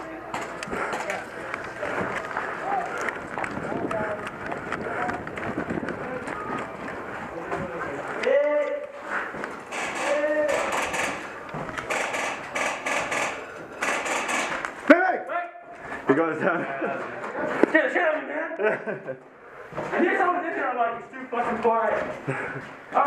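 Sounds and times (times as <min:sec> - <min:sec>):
running footsteps: 0:00.0 - 0:14.9
person shouting: 0:10.1 - 0:10.7.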